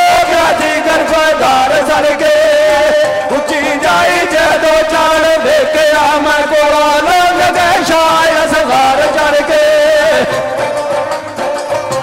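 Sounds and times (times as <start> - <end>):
man singing through microphone: 0.0 - 11.2.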